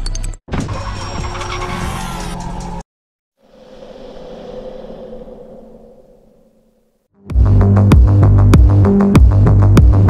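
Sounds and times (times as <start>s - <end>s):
music: 7.2s - 10.0s.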